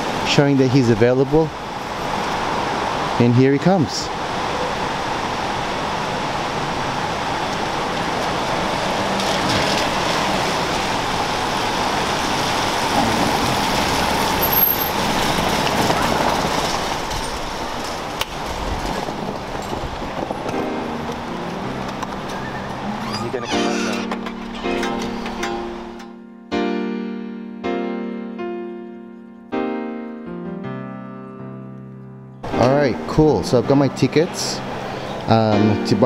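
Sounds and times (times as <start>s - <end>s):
rain hissing: 0.0s - 26.0s, 34.4s - 35.4s
tyres on a wet street: 0.0s - 26.4s, 32.4s - 36.0s
piano music: 19.3s - 36.0s.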